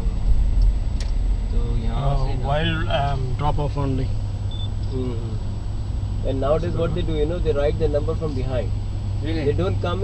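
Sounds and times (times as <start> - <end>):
car driving rumble: 0.0 - 10.0
people talking: 1.5 - 4.2, 4.8 - 5.4, 6.2 - 10.0.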